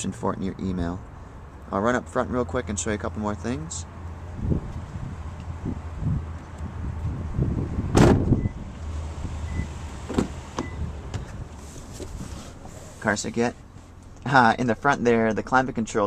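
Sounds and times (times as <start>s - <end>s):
car door thump: 7.9s - 8.5s, 10.0s - 11.3s
shuffling and handling noise: 11.2s - 14.2s.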